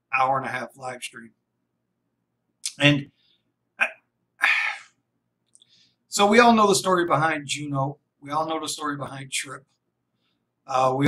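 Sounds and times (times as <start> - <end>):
man speaking: 0.1 - 1.3, 2.6 - 3.2, 3.8 - 4.9, 6.1 - 9.7, 10.7 - 11.0
breathy exhale: 4.4 - 5.0.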